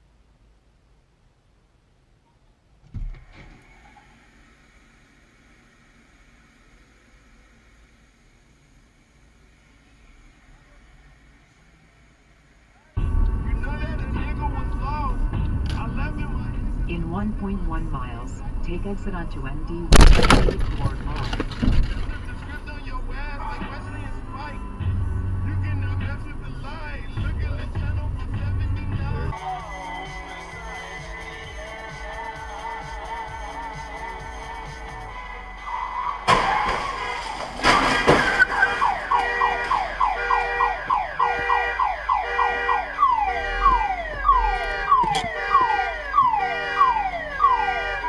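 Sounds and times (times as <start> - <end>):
in-car road rumble: 2.3 - 48.0
car collision impacts: 19.9 - 23.9, 36.2 - 41.6, 43.6 - 46.3.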